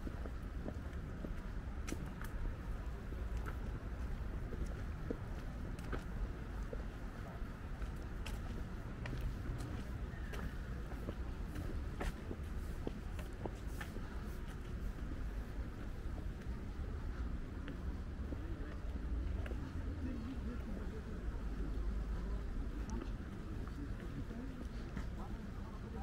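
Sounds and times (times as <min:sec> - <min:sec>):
footsteps on paved path: 0:00.0 - 0:26.0.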